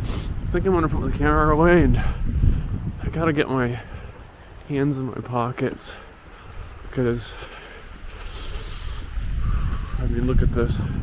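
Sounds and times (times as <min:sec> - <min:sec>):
wind buffeting microphone: 0:00.0 - 0:11.0
microphone handling rustle: 0:06.7 - 0:11.0.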